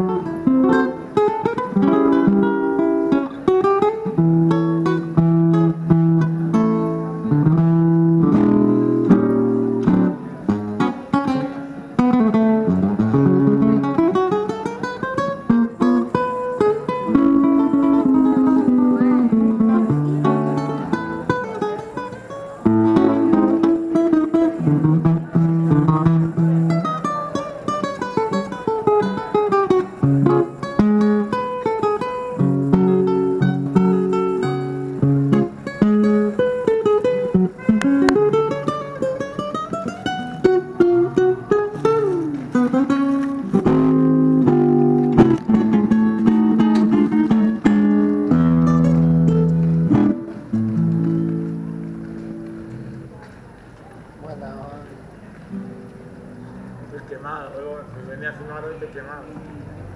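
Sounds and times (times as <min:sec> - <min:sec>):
acoustic guitar playing: 0:00.0 - 0:53.4, 0:54.1 - 0:59.6.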